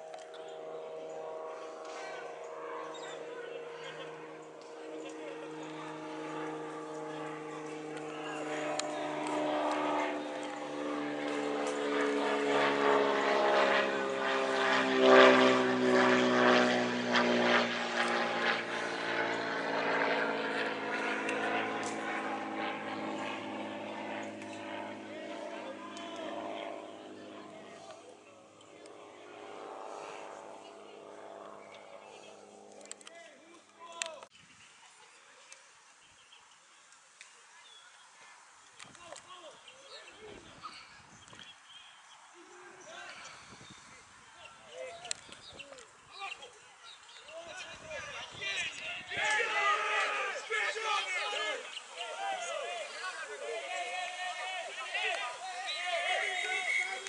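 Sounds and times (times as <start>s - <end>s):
propeller aircraft flying over: 0.0s - 34.4s, 37.5s - 57.0s.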